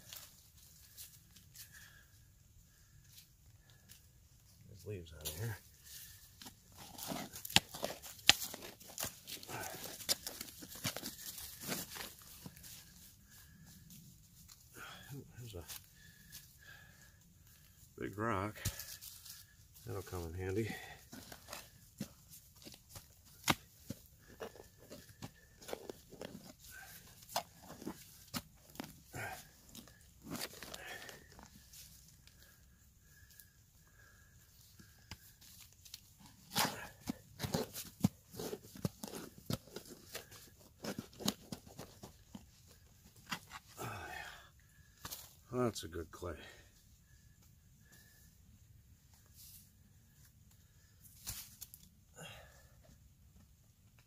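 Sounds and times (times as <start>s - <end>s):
digging in clay soil: 5.0s - 48.3s.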